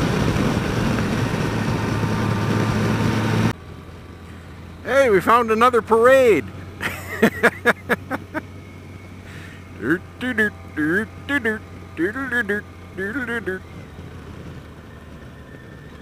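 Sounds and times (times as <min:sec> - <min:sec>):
wind at riding speed: 0:00.0 - 0:03.6, 0:04.8 - 0:16.0
motorcycle engine hum: 0:00.0 - 0:16.0
person's voice: 0:04.8 - 0:06.4, 0:09.8 - 0:13.7.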